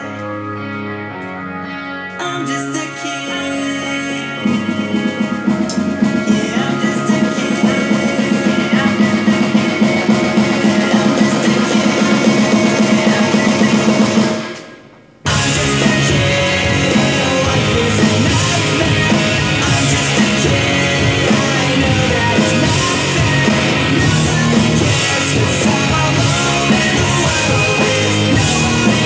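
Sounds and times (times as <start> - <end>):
pop-punk backing track with vocals: 0.0 - 29.0
electronic drum kit: 3.2 - 29.0.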